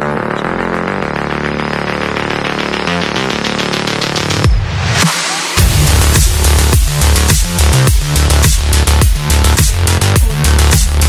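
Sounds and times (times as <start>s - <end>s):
intro music with held low tones: 0.0s - 11.0s.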